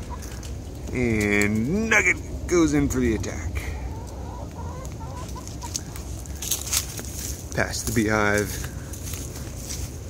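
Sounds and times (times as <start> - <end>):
chickens clucking: 0.0 - 10.0
steady low rumble: 0.0 - 10.0.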